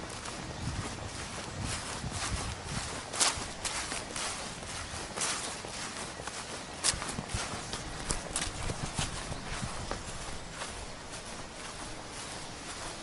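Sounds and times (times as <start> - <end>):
footsteps on grass and dry leaves: 0.0 - 13.0.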